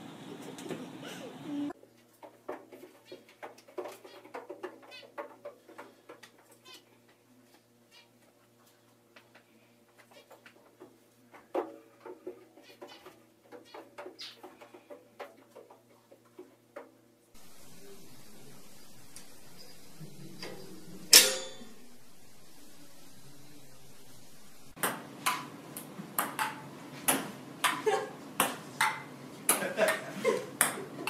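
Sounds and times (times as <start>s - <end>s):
steady hiss: 17.4s - 24.8s
steady low hum: 17.4s - 27.7s.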